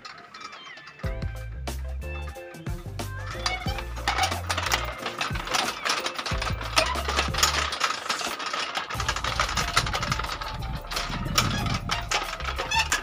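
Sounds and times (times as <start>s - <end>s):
metal prayer wheels clattering: 0.0s - 13.0s
background music with bass: 1.1s - 5.5s, 6.3s - 7.7s, 9.0s - 13.0s.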